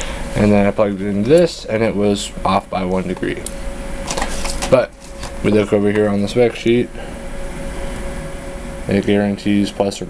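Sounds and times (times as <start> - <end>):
faint steady whine: 0.0 - 10.0
machinery hum and hiss: 0.0 - 10.0.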